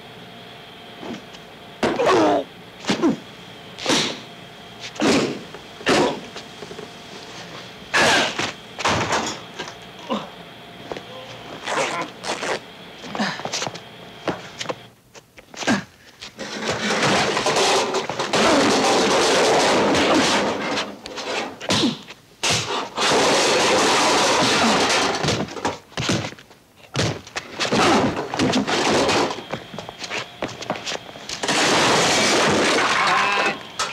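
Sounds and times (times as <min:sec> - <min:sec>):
crashing and clatter: 0:16.4 - 0:21.5, 0:23.0 - 0:25.8, 0:31.4 - 0:33.2.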